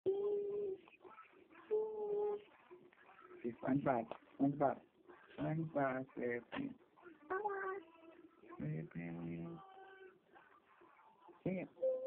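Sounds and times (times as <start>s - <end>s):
toddler making wordless sounds: 0.1s - 2.6s, 7.0s - 8.3s.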